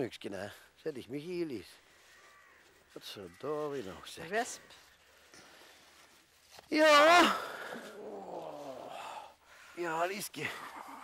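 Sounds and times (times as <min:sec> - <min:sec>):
person groaning: 0:07.1 - 0:09.3.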